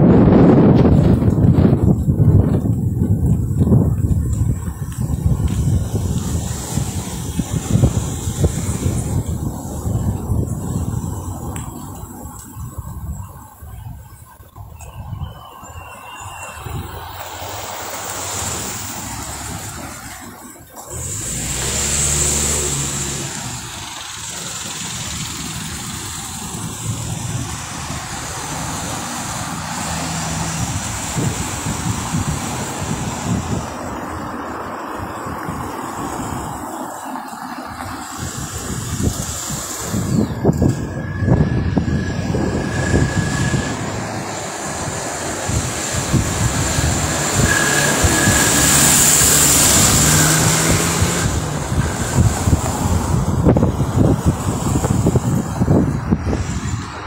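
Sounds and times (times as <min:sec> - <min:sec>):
car road and engine noise: 0:00.0 - 0:57.0
wind buffeting microphone: 0:00.0 - 0:57.0.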